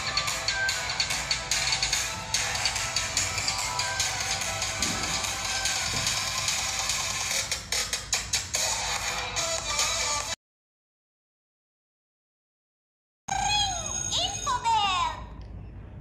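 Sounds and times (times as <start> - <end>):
music with pulsing beat: 0.0 - 10.3.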